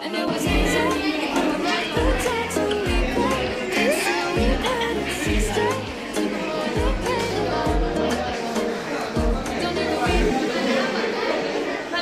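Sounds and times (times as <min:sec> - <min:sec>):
background pop music: 0:00.0 - 0:10.6
students chattering and laughing: 0:00.0 - 0:12.0.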